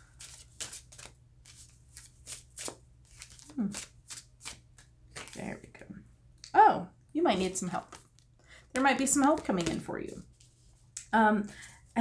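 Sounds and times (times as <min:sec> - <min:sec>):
cards being shuffled: 0:00.1 - 0:05.5, 0:07.8 - 0:10.9.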